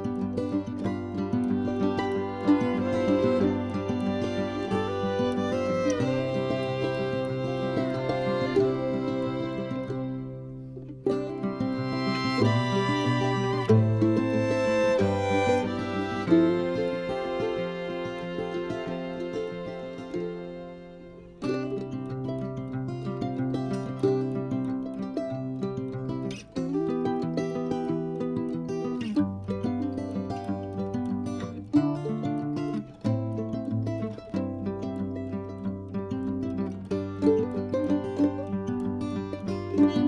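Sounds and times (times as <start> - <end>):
instrumental background music: 1.4 - 20.8.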